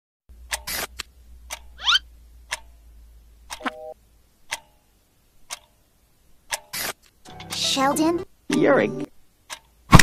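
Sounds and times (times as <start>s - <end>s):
clock ticking with ringing tone: 0.5s - 0.7s, 1.5s - 2.8s, 3.5s - 4.8s, 8.5s - 9.8s.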